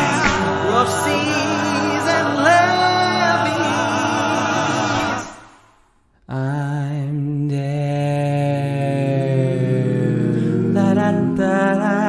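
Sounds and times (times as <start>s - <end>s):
person singing a long note: 0.0s - 5.4s.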